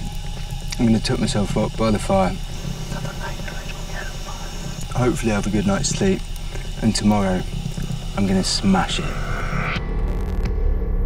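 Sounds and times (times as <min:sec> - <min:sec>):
steady low hum: 0:00.0 - 0:10.4.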